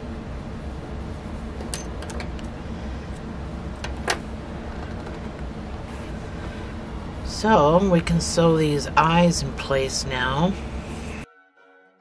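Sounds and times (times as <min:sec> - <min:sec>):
steady background hum: 0:00.0 - 0:11.3.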